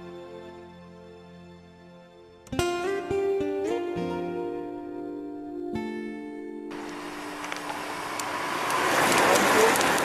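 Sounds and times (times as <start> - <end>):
bicycles riding past: 6.7 - 10.0.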